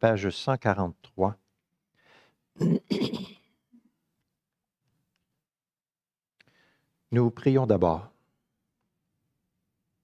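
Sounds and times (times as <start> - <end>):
soft breath: 2.0 - 2.4
man clearing his throat: 2.6 - 3.5.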